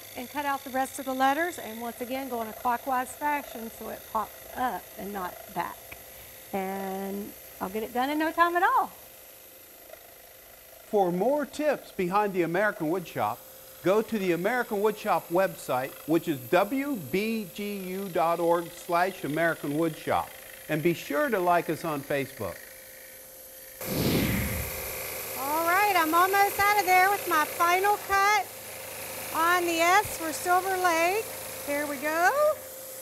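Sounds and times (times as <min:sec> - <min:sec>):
scroll saw cutting wood: 0:00.0 - 0:06.8, 0:09.7 - 0:32.8.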